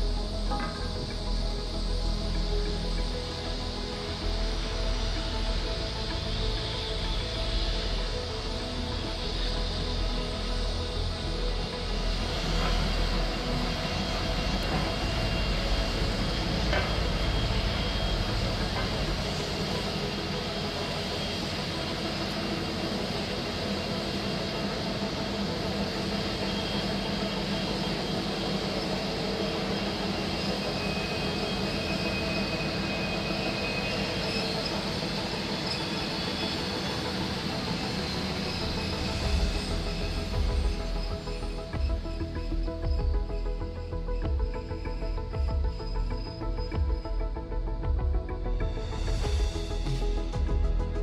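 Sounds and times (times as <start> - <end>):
train wheels rumbling on rail: 0.0 - 43.6
high wheel squeal: 25.9 - 42.4.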